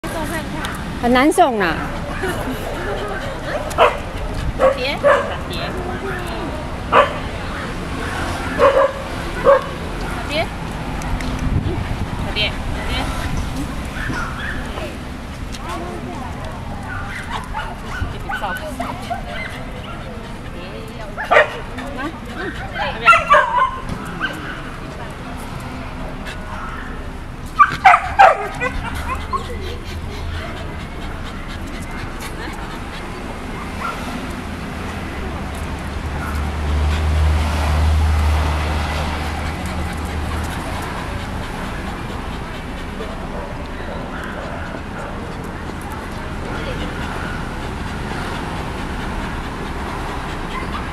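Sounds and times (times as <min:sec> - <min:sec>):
dog barking and yipping: 0:03.5 - 0:05.4, 0:06.9 - 0:07.3, 0:08.4 - 0:09.8, 0:22.8 - 0:24.6, 0:27.6 - 0:29.4, 0:50.5 - 0:50.9
dog yipping: 0:14.0 - 0:14.7, 0:27.6 - 0:29.5, 0:50.5 - 0:50.9.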